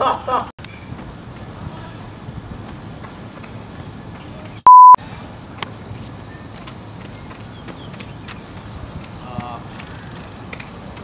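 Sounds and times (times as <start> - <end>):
faint outdoor background noise: 0.0 - 11.0
censor bleep: 4.7 - 5.0.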